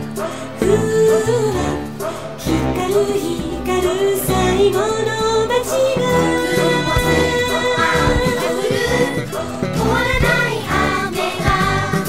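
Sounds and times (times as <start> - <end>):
pop song with singing: 0.0 - 12.0.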